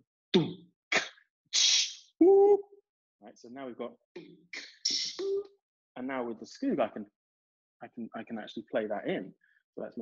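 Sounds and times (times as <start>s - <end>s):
vocal blip: 0.4s - 2.6s, 4.2s - 5.6s.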